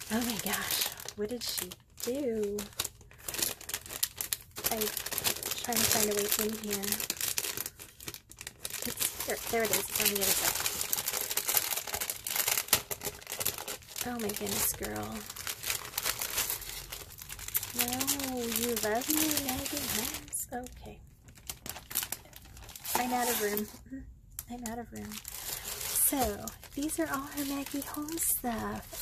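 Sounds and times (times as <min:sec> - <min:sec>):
cellophane crinkling: 0:00.0 - 0:29.0.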